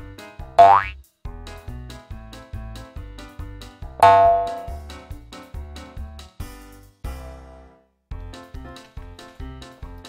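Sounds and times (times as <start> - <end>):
bouncy children's music: 0.0 - 7.5, 8.1 - 10.0.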